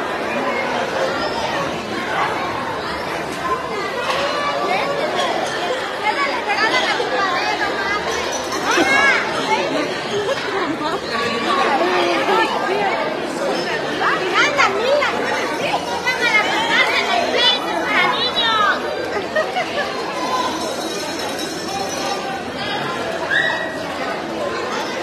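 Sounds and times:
children shouting and chattering: 0:00.0 - 0:25.0
children squealing: 0:23.2 - 0:23.9.

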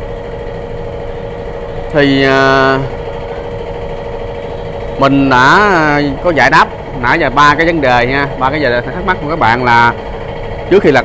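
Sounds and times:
motor humming: 0:00.0 - 0:11.0.

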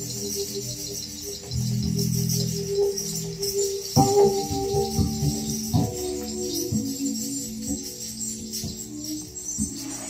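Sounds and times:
cymbals shimmering: 0:00.0 - 0:10.0.

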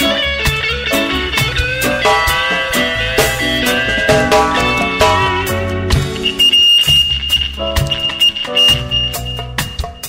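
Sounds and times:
live reggae band playing: 0:00.0 - 0:10.0
steady high tone: 0:01.8 - 0:10.0.

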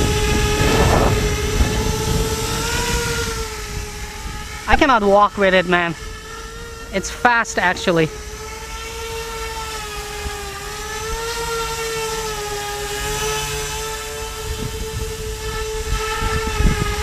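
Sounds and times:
wind rumble on microphone: 0:00.0 - 0:07.1, 0:08.9 - 0:17.0
drone rotors whining: 0:00.0 - 0:17.0.

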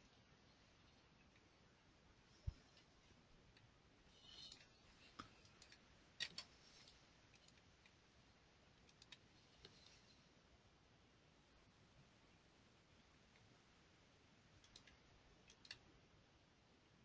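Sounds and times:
faint computer mouse clicks: 0:14.6 - 0:15.8.

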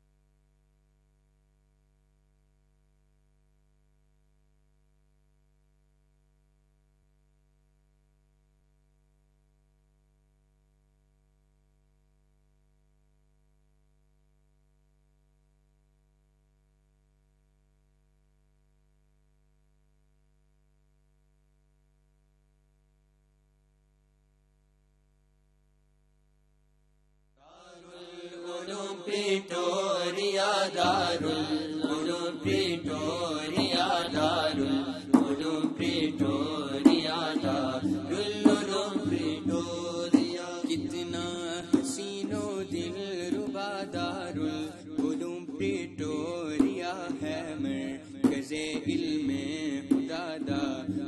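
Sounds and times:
devotional chanting: 0:27.4 - 0:51.0.

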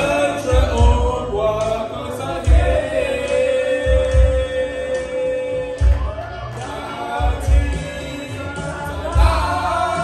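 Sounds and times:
backing music with slow low beat: 0:00.0 - 0:10.0
man singing into a microphone: 0:00.0 - 0:10.0.

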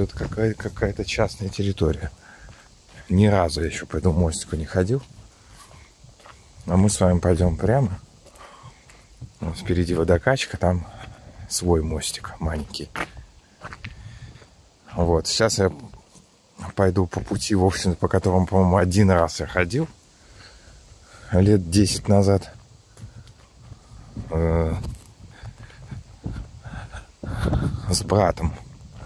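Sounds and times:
footsteps on gravel: 0:00.0 - 0:10.2, 0:10.8 - 0:14.6, 0:21.9 - 0:29.0.

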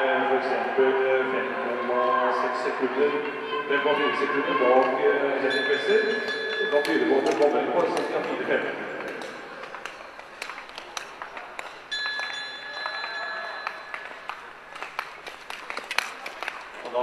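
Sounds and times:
claps echoing indoors: 0:04.7 - 0:17.0.

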